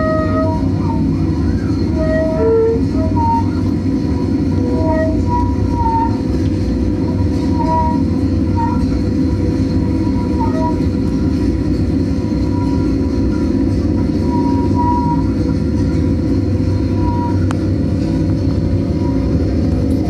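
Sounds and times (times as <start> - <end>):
low drone rumble: 0.0 - 20.0.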